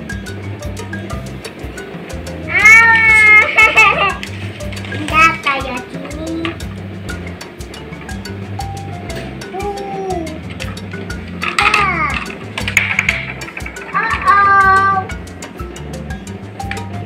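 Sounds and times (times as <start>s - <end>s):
background music with steady beat: 0.0s - 17.0s
child squealing: 2.5s - 3.5s, 9.5s - 10.4s.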